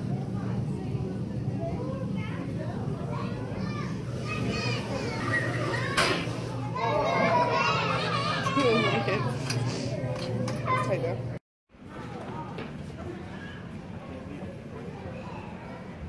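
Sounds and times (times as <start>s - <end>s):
children chattering and calling: 0.0s - 16.0s.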